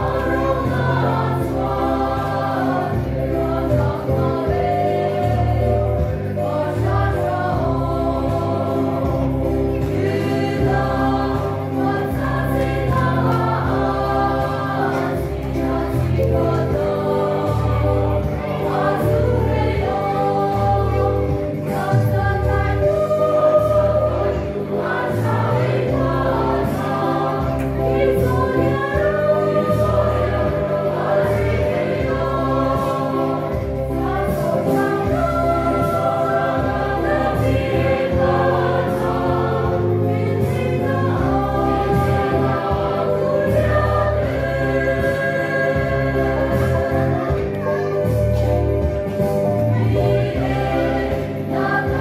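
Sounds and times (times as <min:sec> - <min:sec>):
mixed choir singing a hymn: 0:00.0 - 0:52.0.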